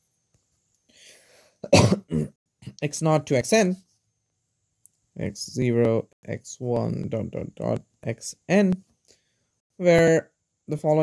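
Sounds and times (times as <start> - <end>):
faint intake of breath: 0.9 - 1.6
man clearing throat: 1.6 - 2.8.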